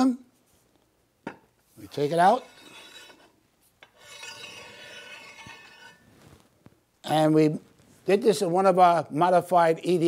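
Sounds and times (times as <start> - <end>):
metal piece scraping against metal: 1.9 - 6.4.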